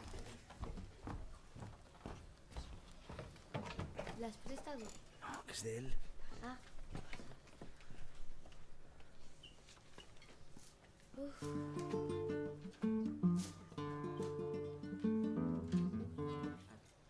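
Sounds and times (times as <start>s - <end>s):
acoustic guitar plucked notes: 11.4s - 16.7s.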